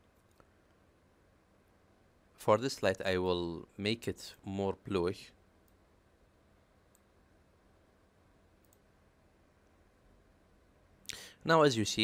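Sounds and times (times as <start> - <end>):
low electrical hum: 0.0 - 12.0
computer mouse clicks: 6.9 - 7.1, 8.6 - 8.9.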